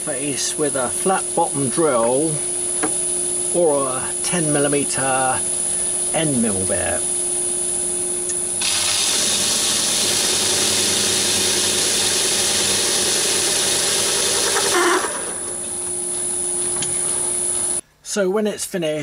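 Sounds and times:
lathe running hum: 0:00.0 - 0:17.8
loud rasping metal cutting: 0:08.6 - 0:15.5.

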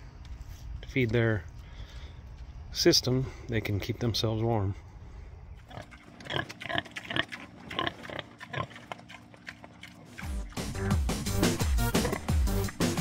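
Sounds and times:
pigs grunting: 0:05.6 - 0:13.0
background music: 0:10.2 - 0:13.0.

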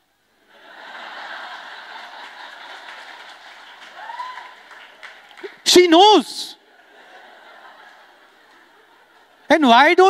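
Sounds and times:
audience laughing: 0:00.5 - 0:03.9, 0:06.6 - 0:09.5
audience applauding: 0:00.9 - 0:06.0.

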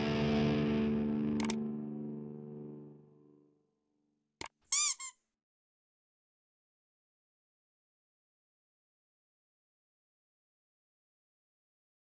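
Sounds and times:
sharp click: 0:01.4 - 0:01.6
high squeaky chirp: 0:04.7 - 0:05.2.

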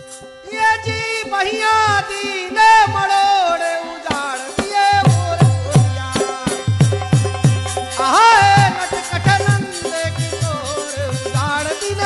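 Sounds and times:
person singing devotional song: 0:00.0 - 0:12.0
hand-drum strokes: 0:04.1 - 0:12.0.

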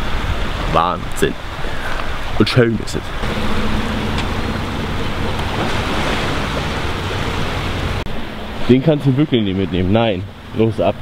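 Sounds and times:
small waves washing onto sand: 0:00.0 - 0:08.0
steady low hum: 0:00.0 - 0:11.0.

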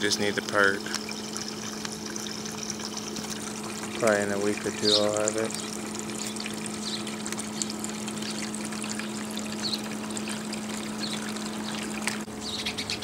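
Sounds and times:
water trickling: 0:00.0 - 0:12.3
low even hum: 0:00.0 - 0:13.0.

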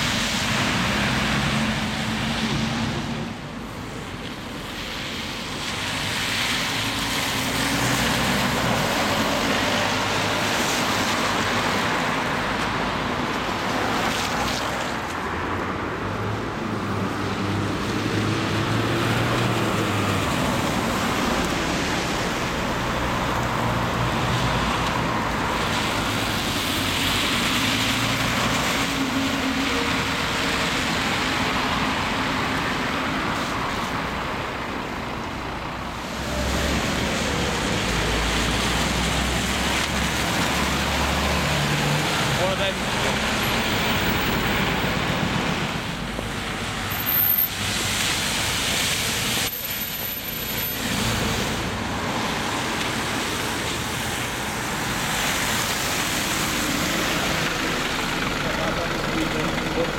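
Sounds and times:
tyre noise on wet road: 0:00.0 - 0:59.9
bus engine rumble: 0:47.6 - 0:59.9.

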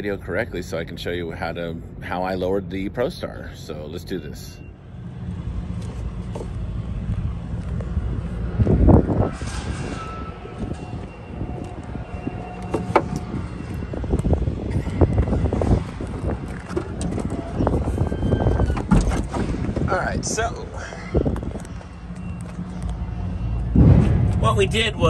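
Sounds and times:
vehicle engine rumbling: 0:00.0 - 0:25.0.

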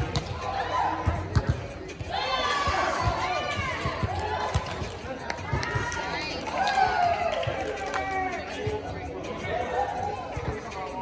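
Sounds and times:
background music: 0:00.0 - 0:11.0
players calling out and chattering: 0:00.0 - 0:11.0.

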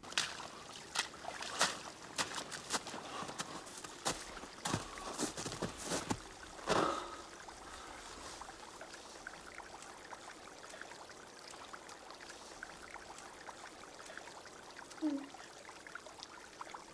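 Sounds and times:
faint trickling water: 0:00.0 - 0:16.9
soft drips and ticks: 0:00.0 - 0:16.9.

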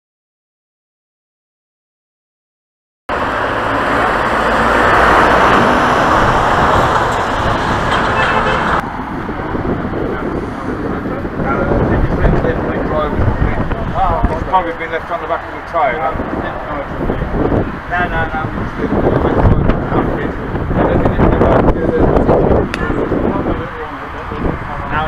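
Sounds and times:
car road and engine noise: 0:03.1 - 0:25.0.

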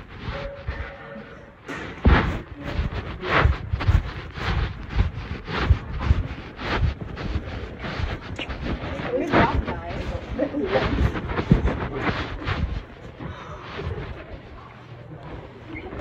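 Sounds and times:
rubbing on phone microphone: 0:00.0 - 0:16.0
faint muffled voices: 0:08.2 - 0:16.0.

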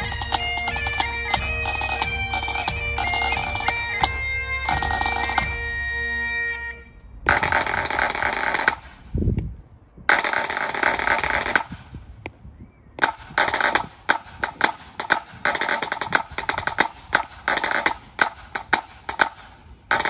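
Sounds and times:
bass and snare drum beats: 0:00.0 - 0:06.1, 0:07.3 - 0:09.0, 0:13.0 - 0:20.0
bagpipes playing over drones: 0:00.0 - 0:08.1.

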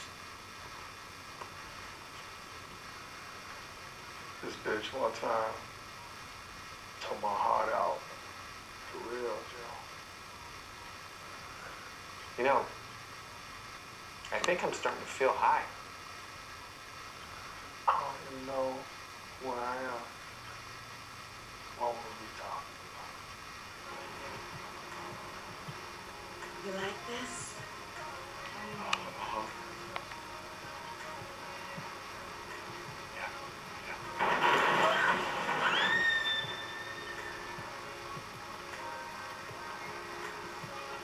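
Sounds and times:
television audio hiss: 0:00.0 - 0:41.0
high-pitched squeal: 0:32.4 - 0:38.2.

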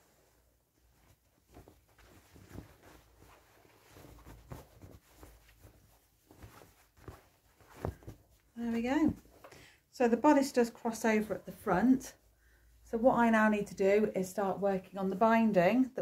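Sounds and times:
fabric rustling: 0:00.0 - 0:09.5.

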